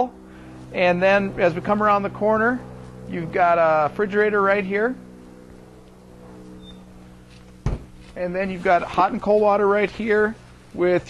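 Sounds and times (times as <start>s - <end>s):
faint steady hum: 0.0s - 11.0s
hatch thumping open: 7.6s - 8.0s.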